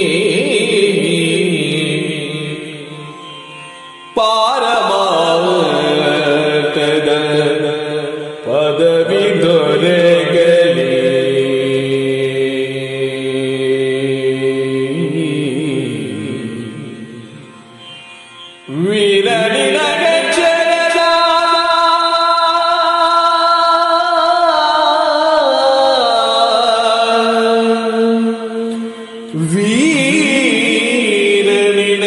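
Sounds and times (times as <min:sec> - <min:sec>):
man singing ornamented verse: 0:00.0 - 0:03.4, 0:04.1 - 0:17.4, 0:18.7 - 0:32.0.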